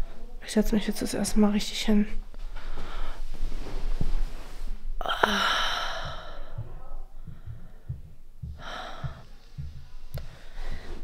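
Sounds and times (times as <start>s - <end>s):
soft low bumps: 2.2s - 11.0s
woman sighing: 5.0s - 7.0s.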